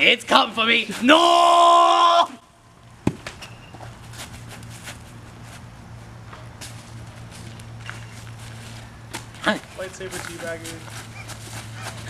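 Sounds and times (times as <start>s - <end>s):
steady low hum: 0.0s - 12.0s
sharp thump: 3.0s - 3.5s
footsteps on dry leaves: 3.5s - 12.0s.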